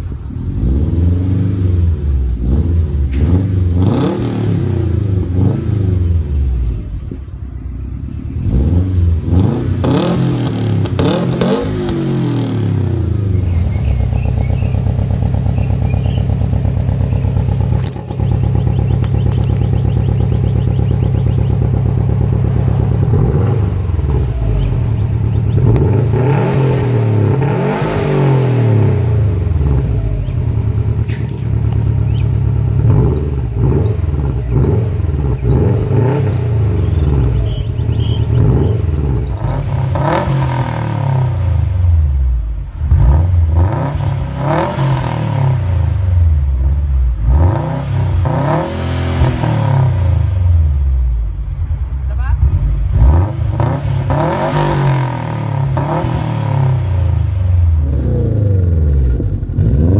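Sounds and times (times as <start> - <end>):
car exhaust revving: 0.1 - 6.8, 8.2 - 59.9
car engine idling: 12.8 - 44.4.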